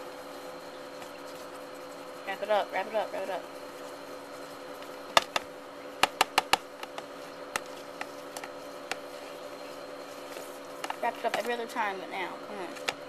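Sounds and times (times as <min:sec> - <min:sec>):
steady hum: 0:00.0 - 0:13.0
clicks and taps on plastic tub: 0:05.2 - 0:05.4, 0:06.0 - 0:09.0.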